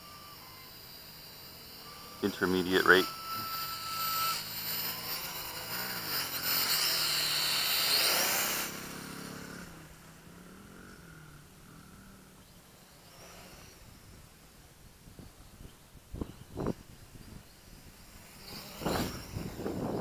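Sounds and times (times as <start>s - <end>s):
quadcopter motors whining: 0.0s - 20.0s.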